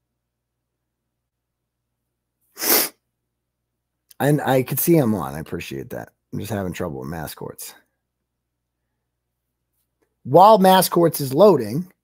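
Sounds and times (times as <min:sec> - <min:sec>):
man's sharp breath burst: 0:02.5 - 0:03.0.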